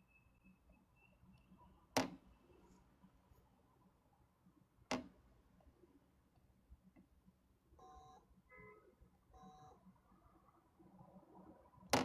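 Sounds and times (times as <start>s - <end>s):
faint electronic beeps: 0.0s - 3.0s, 7.7s - 11.9s.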